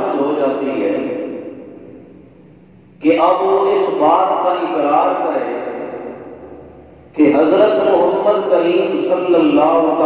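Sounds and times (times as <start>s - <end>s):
man's amplified speech echoing: 0.0s - 10.0s.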